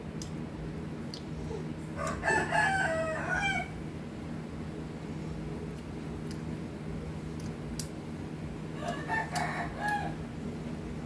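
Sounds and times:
steady low hum: 0:00.0 - 0:11.0
rooster crowing: 0:02.0 - 0:03.8, 0:08.8 - 0:10.3.

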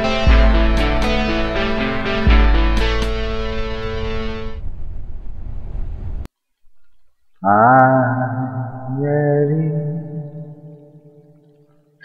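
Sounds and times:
guitar chord: 0:00.0 - 0:04.6
bus rumbling on highway: 0:00.0 - 0:06.3.

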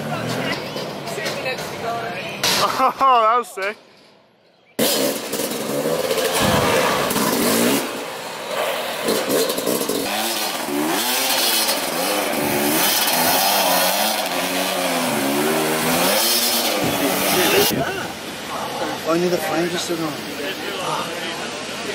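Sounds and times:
dirt bike engine revving: 0:04.8 - 0:17.8.

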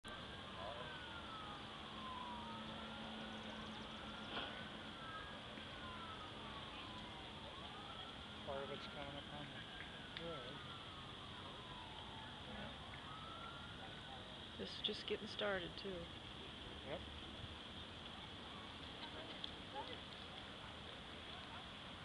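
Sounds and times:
emergency sirens wailing: 0:00.0 - 0:16.1.

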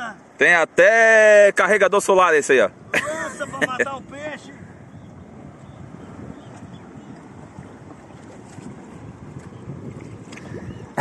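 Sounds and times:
water washing around kayak: 0:00.0 - 0:11.0
wind on microphone: 0:02.5 - 0:11.0.

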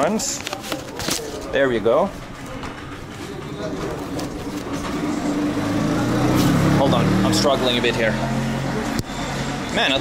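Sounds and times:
vehicle engine droning: 0:02.1 - 0:10.0.

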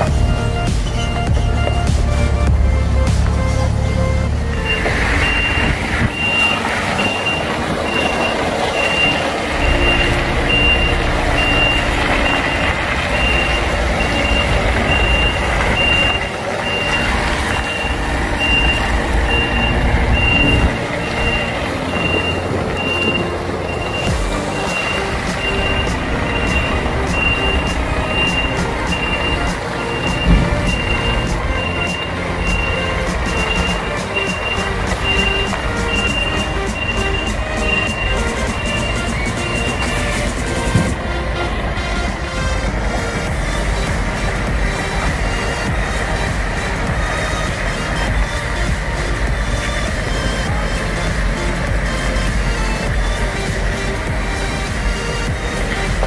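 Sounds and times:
diesel truck engine running: 0:00.0 - 0:56.0
reversing alarm beeping: 0:00.0 - 0:56.0.

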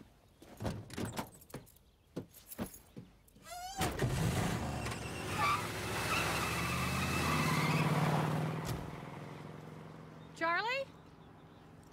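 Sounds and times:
car engine starting and revving: 0:03.9 - 0:10.4.

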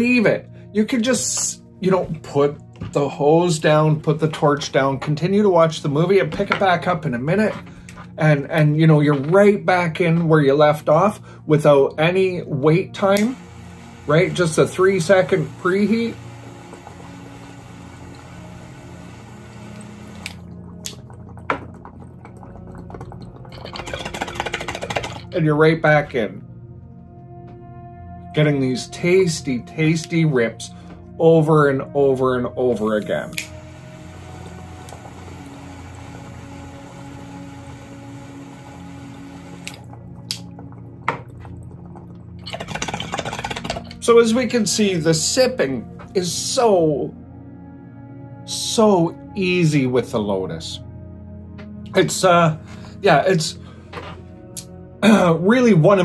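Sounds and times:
background music: 0:00.0 - 0:56.0
water pipe bubbling: 0:13.4 - 0:25.4, 0:33.6 - 0:44.1
water bubbling in a bong: 0:19.2 - 0:25.3, 0:39.6 - 0:44.0
torch click: 0:33.3 - 0:33.6, 0:39.6 - 0:40.4.

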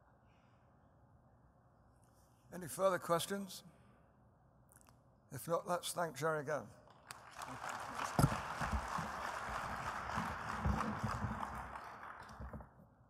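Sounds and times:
audience applauding: 0:06.9 - 0:12.8.

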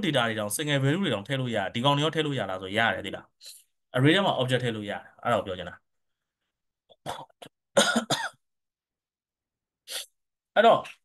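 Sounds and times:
person coughing: 0:07.0 - 0:08.5.

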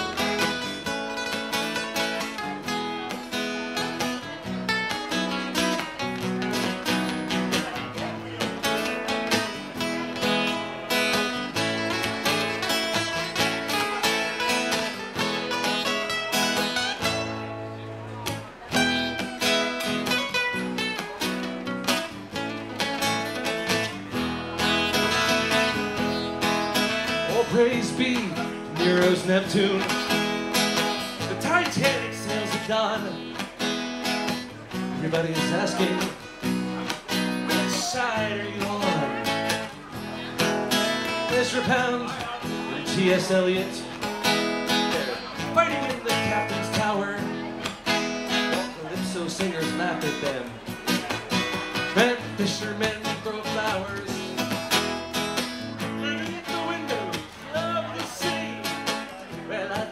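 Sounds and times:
acoustic guitars strumming chords: 0:00.0 - 0:59.9
guitar lead line with bending notes: 0:00.0 - 0:59.9.

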